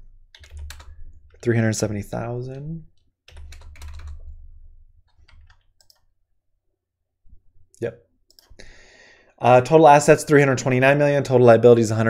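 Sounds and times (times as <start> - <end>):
keyboard keystrokes clicking: 0.4 - 0.9, 3.3 - 4.2, 5.0 - 6.0.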